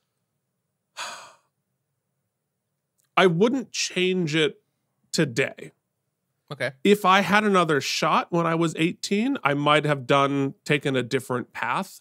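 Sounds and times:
man sighing: 1.0s - 1.5s.

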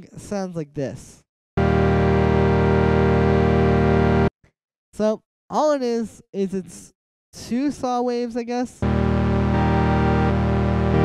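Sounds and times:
synthesizer holding steady chord: 1.6s - 4.3s, 8.8s - 11.0s.

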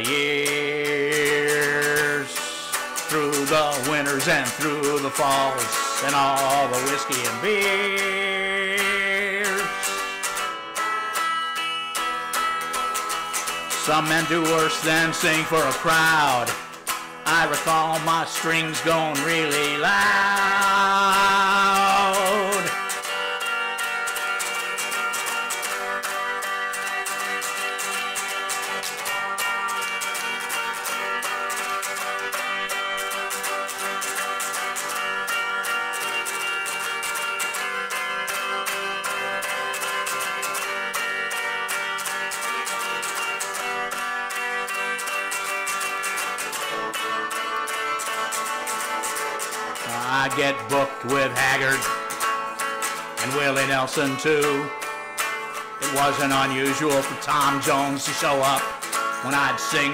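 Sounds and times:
electric guitar strumming: 0.0s - 59.9s.

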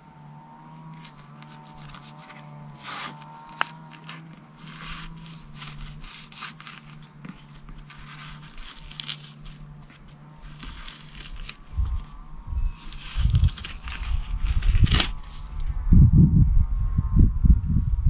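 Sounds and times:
steady low hum: 0.0s - 18.0s
knife scraping fish: 1.0s - 15.5s.

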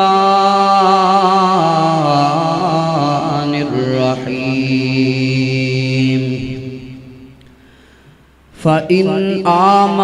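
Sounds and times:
man reciting melodically: 0.0s - 7.4s, 8.5s - 10.0s.

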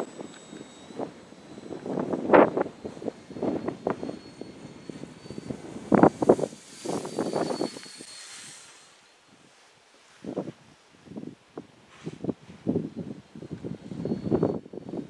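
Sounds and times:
high whine of electric motor: 0.0s - 9.4s, 12.2s - 15.0s
gusty wind buffeting microphone: 0.0s - 9.6s, 10.2s - 15.0s.

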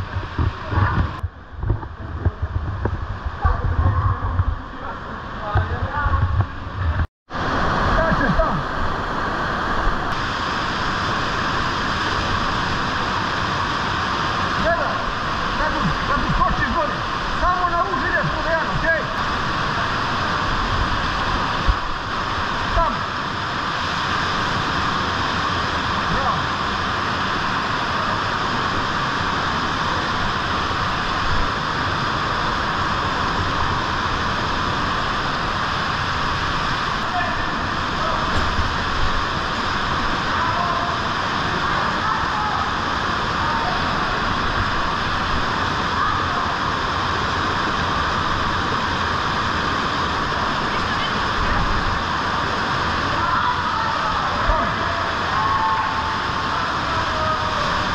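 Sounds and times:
stream rushing over rocks: 0.0s - 57.9s.

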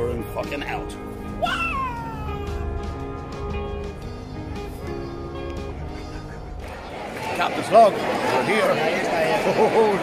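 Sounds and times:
background music: 0.0s - 8.0s
high drawn-out cry: 1.4s - 2.7s.

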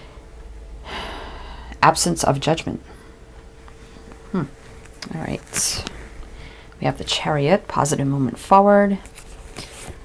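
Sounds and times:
woman breathing in: 0.8s - 1.8s, 6.0s - 6.8s
woman speaking: 1.8s - 2.9s, 4.3s - 6.0s, 6.8s - 9.1s.

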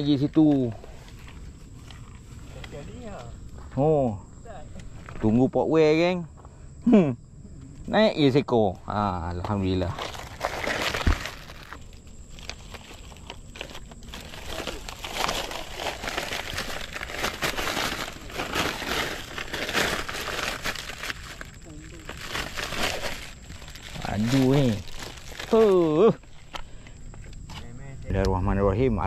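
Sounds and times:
plastic bag crinkling: 9.8s - 26.6s.

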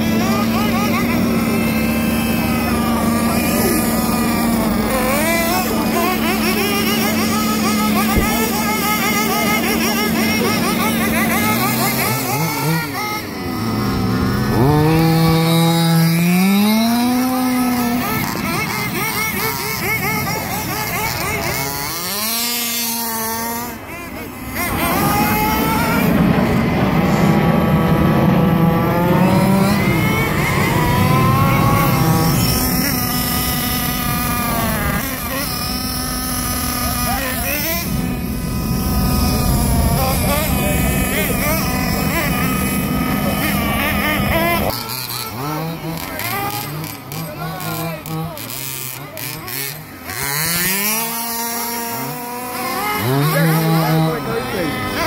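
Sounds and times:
rc car motor revving: 0.0s - 55.0s.

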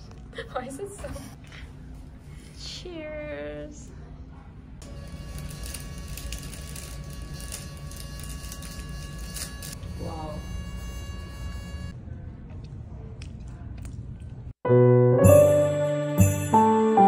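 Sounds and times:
soft keyboard chords: 14.7s - 17.0s.

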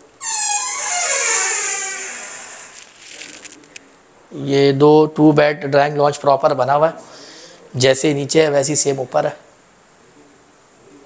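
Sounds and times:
door hinge squeaking: 0.0s - 2.9s.

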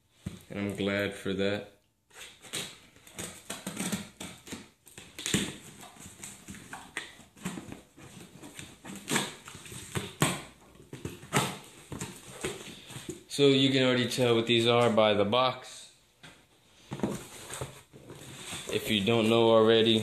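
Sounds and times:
knife slitting packing tape: 2.2s - 5.6s.

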